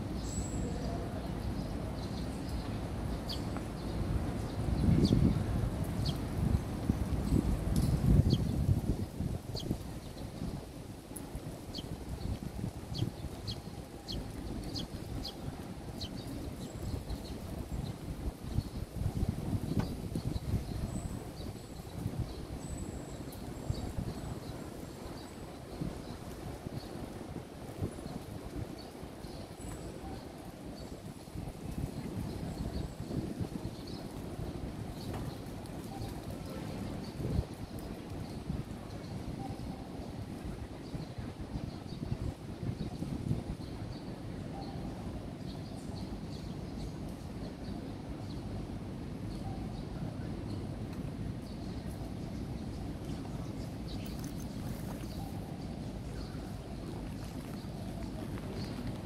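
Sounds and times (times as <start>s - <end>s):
small birds chirping: 0.0s - 48.6s, 49.2s - 59.0s
wind rumble: 0.0s - 59.0s.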